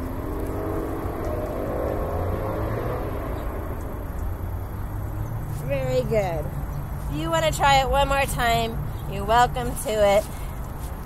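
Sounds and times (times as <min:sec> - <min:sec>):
constant low rumble: 0:00.0 - 0:11.0
passing vehicle engine: 0:00.0 - 0:11.0.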